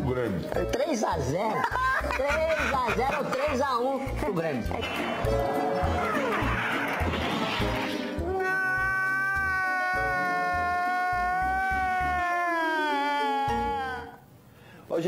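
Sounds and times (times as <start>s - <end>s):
man wailing: 8.2s - 14.2s.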